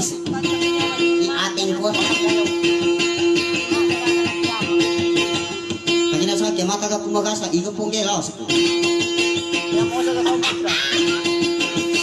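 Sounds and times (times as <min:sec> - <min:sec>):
plucked string instrument: 0:00.0 - 0:12.0.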